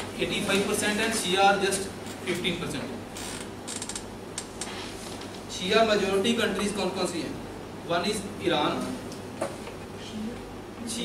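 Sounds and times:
low electrical hum: 0:00.0 - 0:11.0
creaks and rustles: 0:03.2 - 0:05.4.

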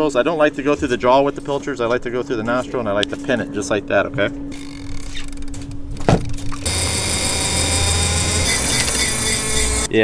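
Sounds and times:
mechanical whir with high whine: 0:03.2 - 0:10.0.

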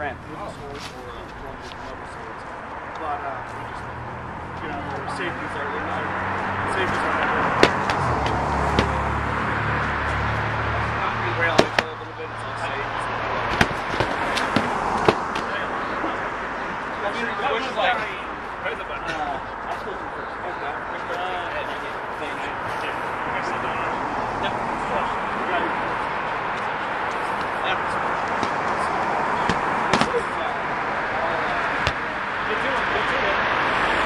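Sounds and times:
padded swords whacking shields: 0:07.6 - 0:08.1, 0:11.5 - 0:11.9, 0:13.5 - 0:15.5, 0:29.4 - 0:30.2.

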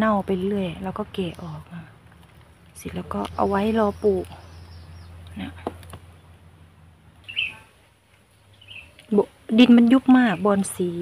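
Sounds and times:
small bird chirping: 0:02.4 - 0:06.4, 0:07.2 - 0:11.0.

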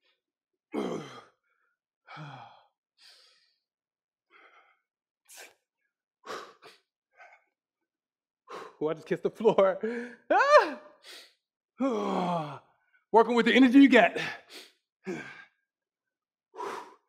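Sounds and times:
man breathing hard: 0:00.9 - 0:03.6, 0:04.3 - 0:05.6, 0:06.2 - 0:07.5, 0:08.4 - 0:08.8, 0:09.8 - 0:12.7, 0:14.2 - 0:15.6, 0:16.5 - 0:17.0.

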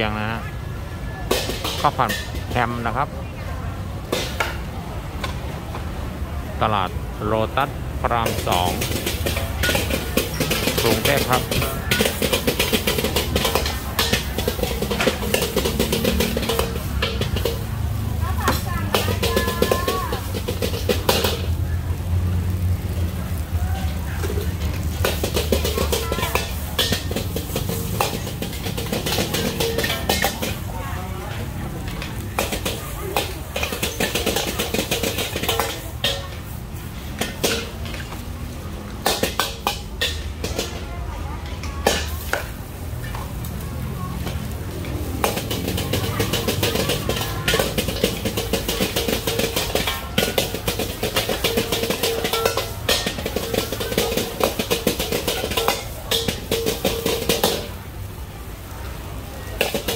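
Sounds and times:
metal spatula clanging on wok: 0:01.3 - 0:03.0, 0:08.1 - 0:21.6, 0:23.8 - 0:38.2, 0:38.9 - 0:43.2, 0:44.2 - 0:57.8, 0:59.6 - 0:59.9
gas burner rumble: 0:03.9 - 0:59.9.

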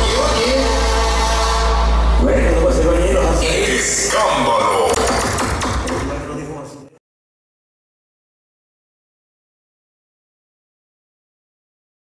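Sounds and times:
dance music from sound system: 0:00.0 - 0:06.3.

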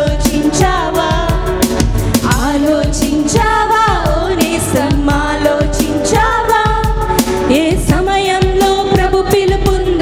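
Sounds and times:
band with steady drum beat: 0:00.0 - 0:10.0
women singing worship song: 0:00.0 - 0:10.0.

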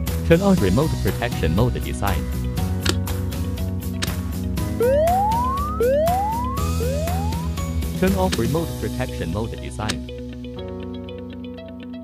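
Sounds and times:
background music: 0:00.0 - 0:12.0
electronic rising whoop: 0:04.8 - 0:07.6.

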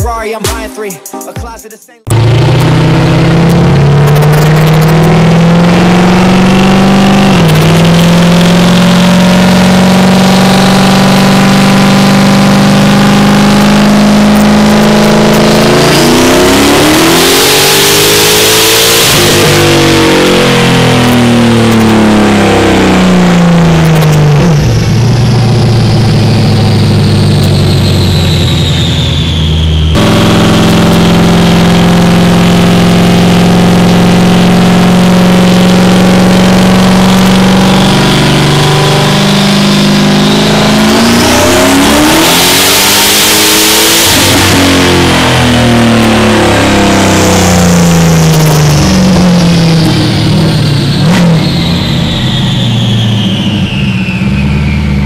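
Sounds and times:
turbocharged engine revving on dyno: 0:02.1 - 0:55.0.

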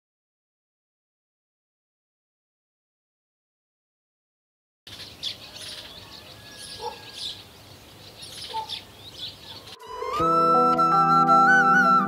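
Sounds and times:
songbirds chirping: 0:04.9 - 0:10.6
faint outdoor hiss: 0:04.9 - 0:12.0.

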